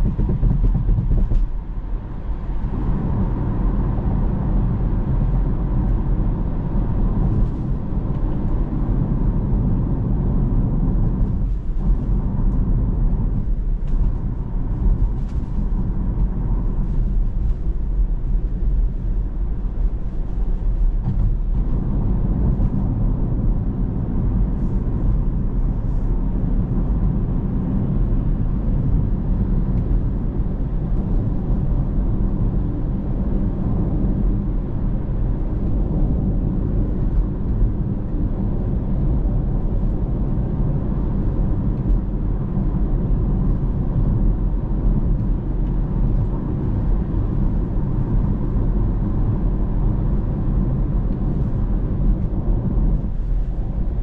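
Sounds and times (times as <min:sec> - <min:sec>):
car tyre road rumble: 0:00.0 - 0:54.0.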